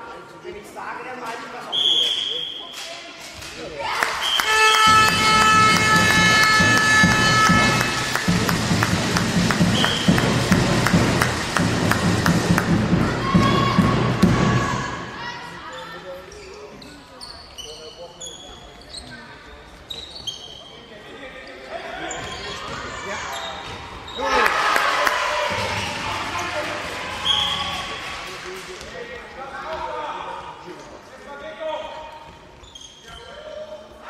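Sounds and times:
people shouting in a hall: 0:03.8 - 0:08.4, 0:12.6 - 0:15.7, 0:21.8 - 0:28.3
ball bouncing on hall floor: 0:04.4 - 0:14.6
shoes squeaking: 0:15.7 - 0:24.4, 0:32.2 - 0:33.6.

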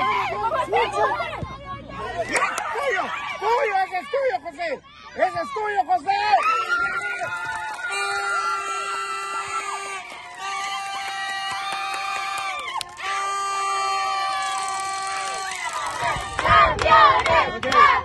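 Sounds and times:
crowd shouting and cheering: 0:00.0 - 0:18.0
long held cries: 0:07.7 - 0:15.7.

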